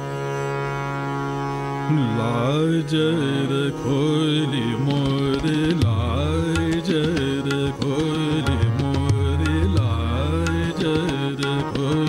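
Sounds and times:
man singing classical melody: 1.7 - 12.0
tabla strokes: 4.9 - 12.0.

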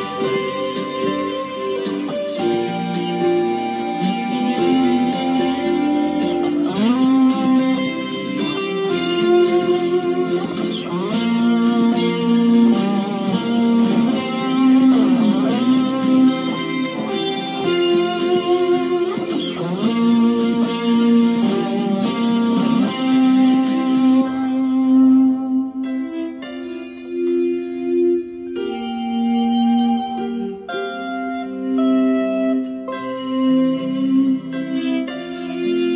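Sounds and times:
high ticking beat: 0.0 - 24.3
electric guitar lead with bends: 0.0 - 35.9.

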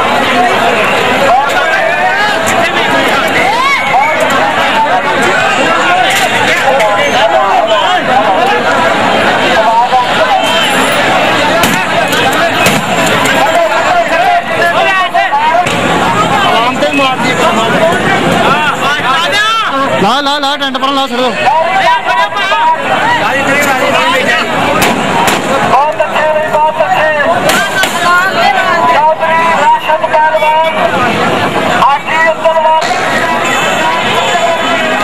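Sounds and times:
crowd of men talking and shouting: 0.0 - 35.0
man speaking loudly: 18.6 - 24.5, 25.6 - 31.0, 31.7 - 34.9.

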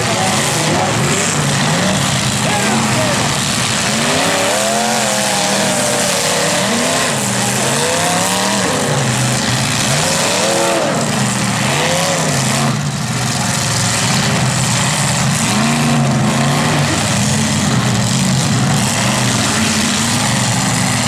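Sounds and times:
car engines revving: 0.0 - 21.0.

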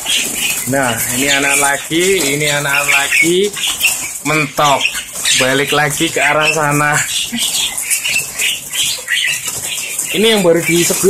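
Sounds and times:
mynas chattering: 0.0 - 11.0
wings fluttering: 0.0 - 11.0.

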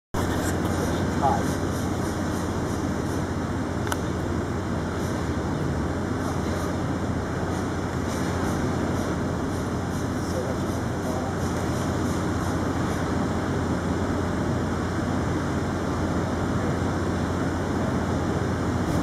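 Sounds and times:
low machine hum: 0.2 - 19.0.

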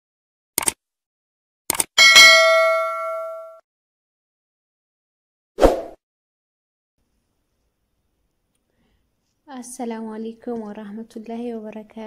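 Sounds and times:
notification bell chime: 2.0 - 3.6.

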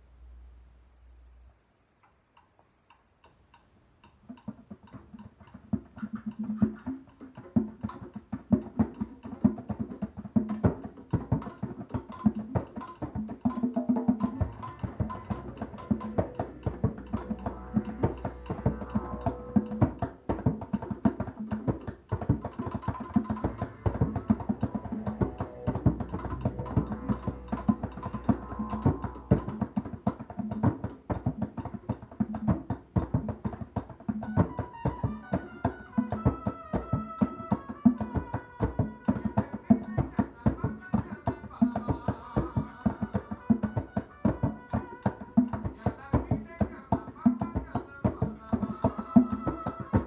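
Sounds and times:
light percussion ticks: 2.0 - 6.8
djembes played by hand: 4.0 - 50.0
low hand-drum strikes: 14.2 - 31.4.

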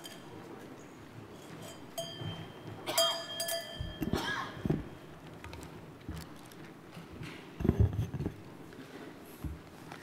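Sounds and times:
short ringing clink: 1.4 - 4.2
microphone handling knocks: 7.2 - 8.4.

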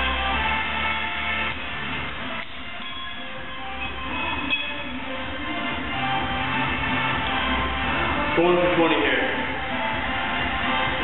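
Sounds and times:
loud dense background music: 0.0 - 11.0.

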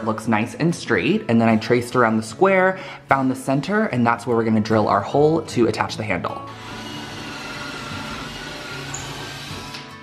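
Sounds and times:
background music: 0.0 - 10.0
cordless drill boring wood: 6.5 - 10.0.

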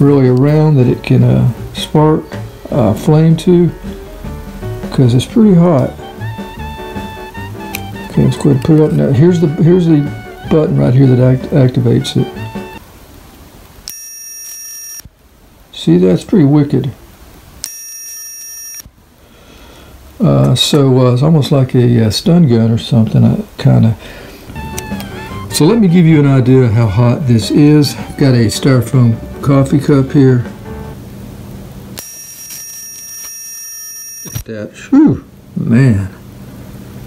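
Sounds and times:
electric arc buzzing: 0.0 - 15.4, 24.4 - 34.5
electric arc lighter whine: 13.6 - 15.1, 17.6 - 19.0, 31.8 - 34.5.

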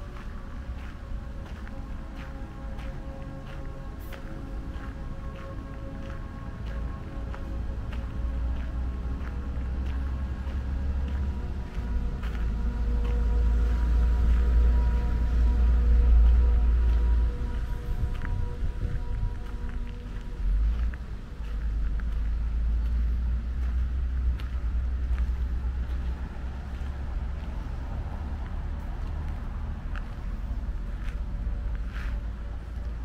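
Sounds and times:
faint steady tones: 0.0 - 33.0
low rumble: 0.0 - 33.0.

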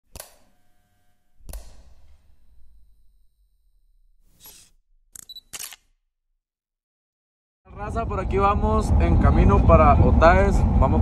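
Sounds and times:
sharp clicks: 1.4 - 2.4
low rumble: 7.7 - 11.0.

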